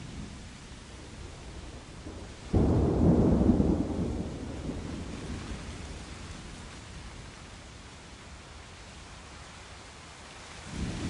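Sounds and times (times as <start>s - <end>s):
steady rain: 0.0s - 11.0s
thunder rumbling: 1.0s - 6.2s.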